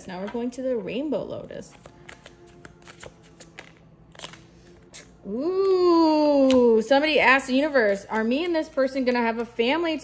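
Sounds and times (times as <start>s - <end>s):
cards being shuffled: 1.7s - 5.1s.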